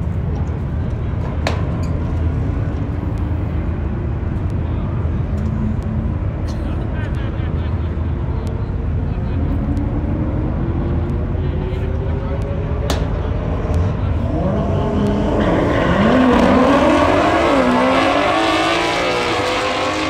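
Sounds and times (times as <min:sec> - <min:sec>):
car engines idling: 0:00.0 - 0:17.8.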